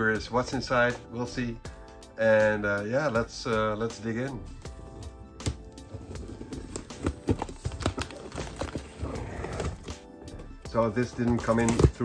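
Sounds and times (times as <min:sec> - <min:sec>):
cardboard rustle: 0:05.8 - 0:09.9.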